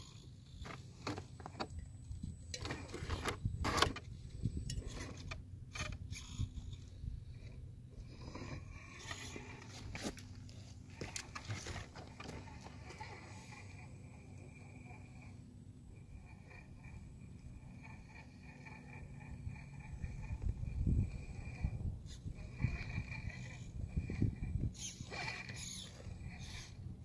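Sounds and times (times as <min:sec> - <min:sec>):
tyres and chassis scraping rock: 0:00.0 - 0:15.4, 0:16.0 - 0:27.0
electric rc car drivetrain running: 0:02.6 - 0:10.2, 0:10.9 - 0:27.0.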